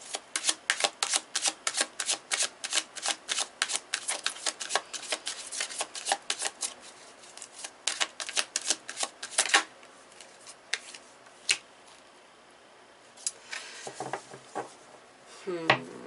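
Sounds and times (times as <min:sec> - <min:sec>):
cards being shuffled: 0:00.1 - 0:11.6.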